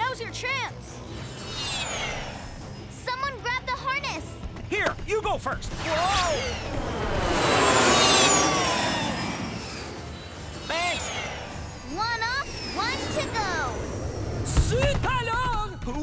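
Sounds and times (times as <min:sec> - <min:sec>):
jet whoosh with falling pitch: 0:05.8 - 0:14.7.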